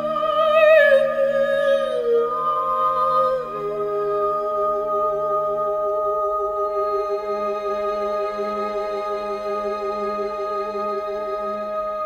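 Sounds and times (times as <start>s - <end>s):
singers holding soft notes: 0.0s - 12.0s.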